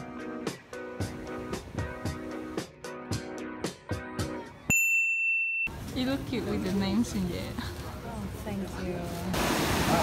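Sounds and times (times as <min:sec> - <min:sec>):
outdoor background noise: 0:00.0 - 0:10.0
high electronic ding tone: 0:04.7 - 0:05.8.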